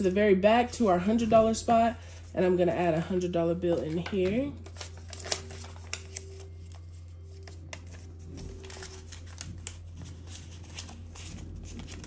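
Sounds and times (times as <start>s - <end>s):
steady low hum: 0.0s - 12.0s
paper banknote rustling: 3.7s - 12.0s.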